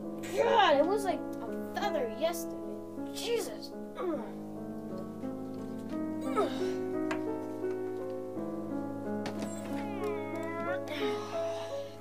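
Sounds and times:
music with held notes: 0.0 - 12.0.

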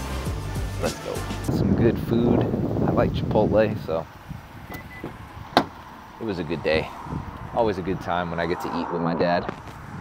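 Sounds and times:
quiet outdoor background: 0.0 - 10.0
faint short beep: 4.7 - 5.1
car door latch clicking: 4.7 - 5.8.

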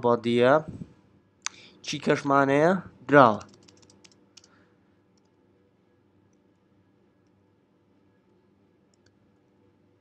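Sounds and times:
computer keyboard keystrokes: 3.3 - 4.6.

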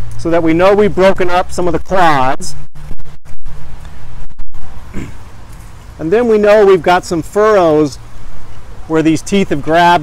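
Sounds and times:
low rumble: 2.4 - 5.2
short grunt: 4.9 - 5.3.

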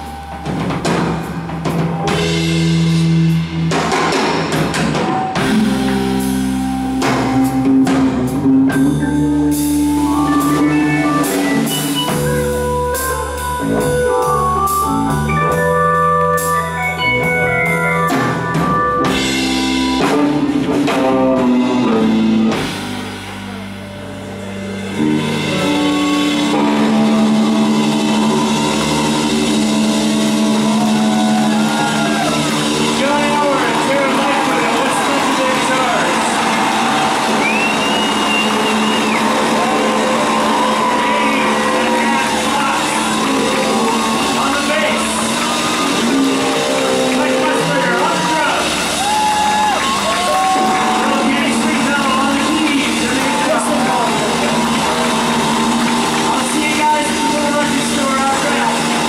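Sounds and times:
distorted electric guitars: 0.0 - 59.0
rock band sustained chord: 5.4 - 15.6, 16.4 - 59.0.

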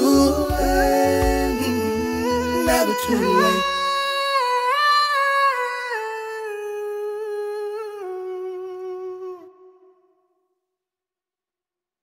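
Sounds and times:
person humming a slow melody: 0.0 - 4.0.

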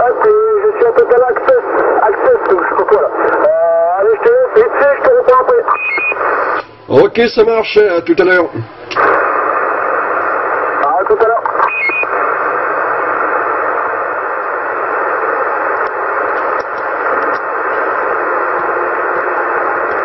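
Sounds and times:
radio static hiss: 0.0 - 20.0
faint voice over radio: 10.6 - 11.6.

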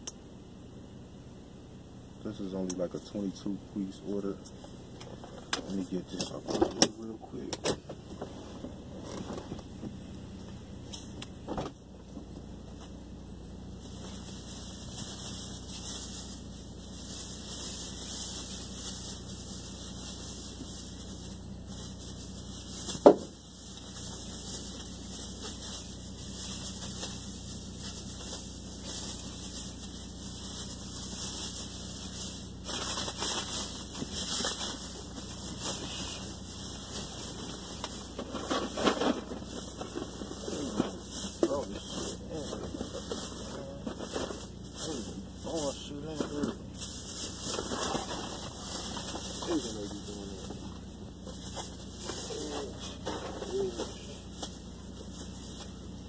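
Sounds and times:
groceries rustling: 23.9 - 55.8.

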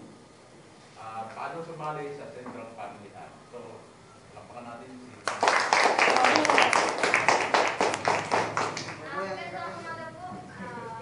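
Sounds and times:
audience clapping: 5.2 - 9.1.

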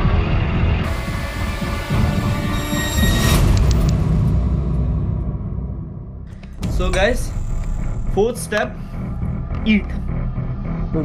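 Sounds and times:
deep rumble: 3.6 - 11.0.

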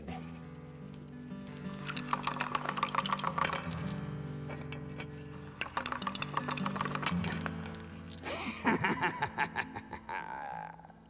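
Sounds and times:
dice rattling in hands: 1.6 - 4.0, 4.7 - 8.4.

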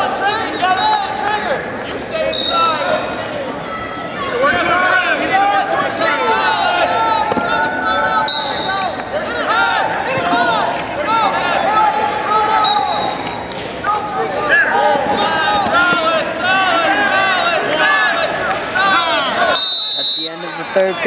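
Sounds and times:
crowd yelling: 0.0 - 21.0.

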